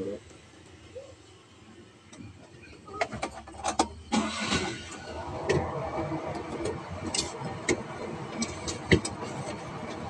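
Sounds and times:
truck engine starting and running: 1.9 - 10.0.

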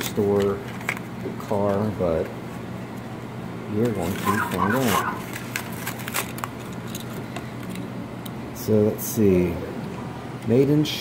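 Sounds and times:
steady low hum: 0.0 - 11.0
toy packaging crackling: 4.0 - 7.2.

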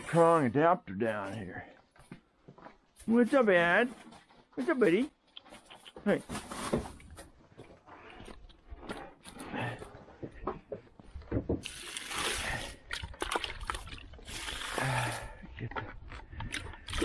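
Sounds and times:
water sloshing in plastic bucket: 11.5 - 15.4
water dumped onto hay: 11.6 - 15.2.

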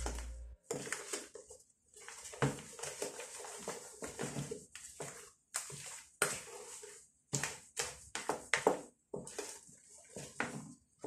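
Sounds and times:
hand squishing batter: 0.0 - 11.0.

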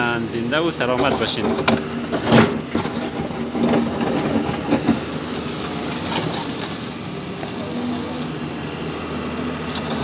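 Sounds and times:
excavator diesel engine running: 0.0 - 10.0.

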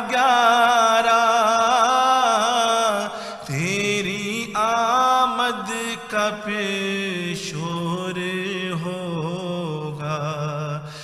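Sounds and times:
man chanting a prayer: 0.0 - 11.0.

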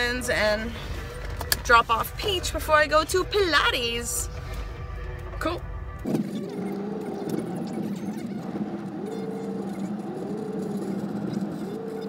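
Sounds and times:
car driving heard from inside: 5.1 - 12.0.

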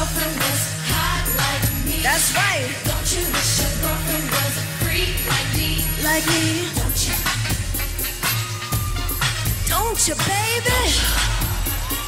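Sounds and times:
pop music with deep bass: 0.0 - 12.0.

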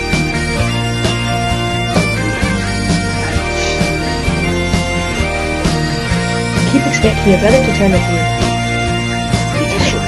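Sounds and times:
bagpipes with drone: 0.0 - 10.0
drum beat: 0.1 - 8.6, 9.3 - 10.0.

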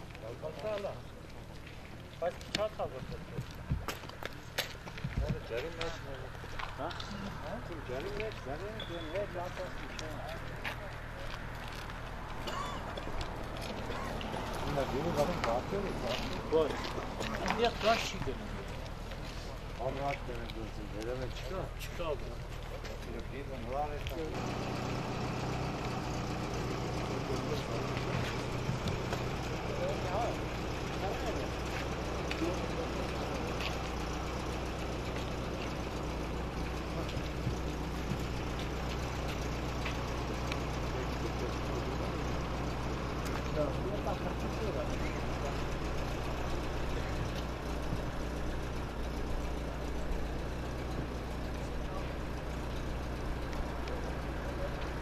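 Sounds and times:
vehicle engine idling: 0.0 - 55.0.

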